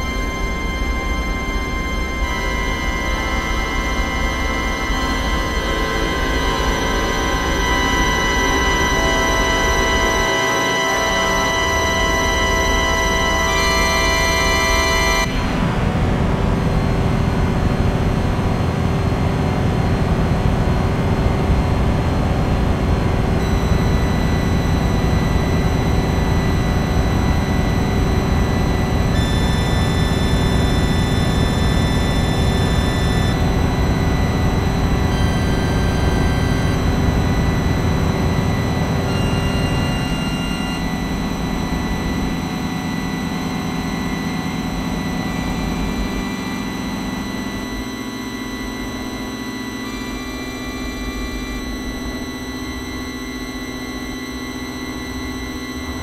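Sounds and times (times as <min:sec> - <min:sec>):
low electronic drone rumble: 0:11.3 - 0:56.0
steady high electronic tones: 0:23.3 - 0:56.0.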